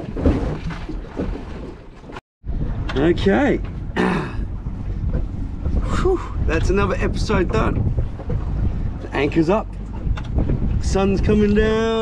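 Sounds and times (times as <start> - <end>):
sea washing around boat: 0.0 - 12.0
wind buffeting microphone: 2.4 - 12.0.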